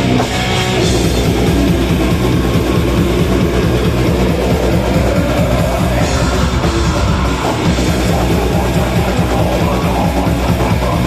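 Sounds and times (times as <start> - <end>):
bass guitar: 0.0 - 11.0
distorted electric guitars: 0.0 - 11.0
fast drumming on drum kit: 0.0 - 11.0.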